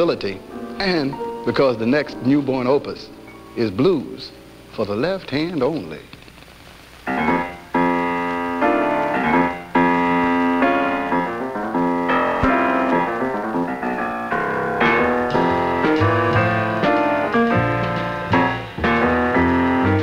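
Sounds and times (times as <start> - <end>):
jazz piano blues: 0.0 - 5.0, 7.0 - 20.0.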